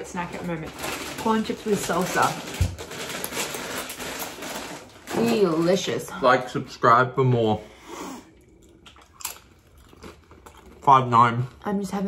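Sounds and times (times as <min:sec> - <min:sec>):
chewing tortilla chip: 0:08.3 - 0:11.7.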